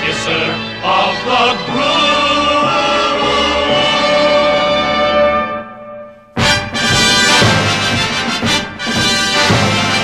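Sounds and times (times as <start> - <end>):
orchestral accompaniment: 0.0 - 10.0.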